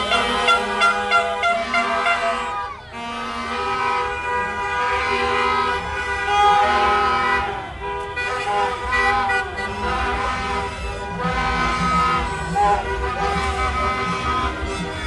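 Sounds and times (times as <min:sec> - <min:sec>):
car horns honking: 0:00.0 - 0:15.0
traffic hum: 0:00.0 - 0:15.0.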